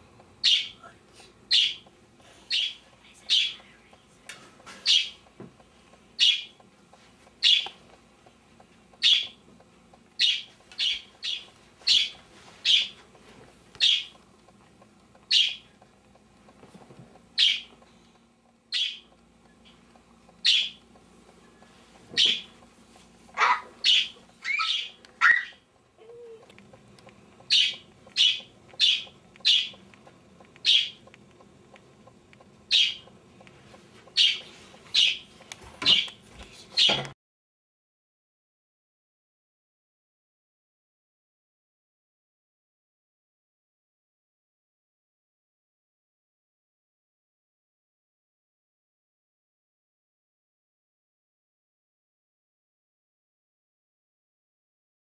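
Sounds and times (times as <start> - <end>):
bird chirping loudly: 0.4 - 0.8, 6.2 - 6.5, 9.0 - 9.3, 10.2 - 12.9, 18.7 - 19.1, 20.4 - 20.8, 23.4 - 25.6, 27.5 - 29.8, 30.6 - 31.0, 32.7 - 33.0, 34.2 - 34.4, 35.0 - 35.2.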